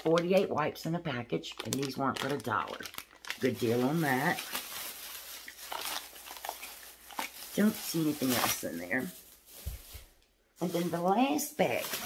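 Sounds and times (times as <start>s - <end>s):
shopping bag rustling: 1.6s - 12.0s.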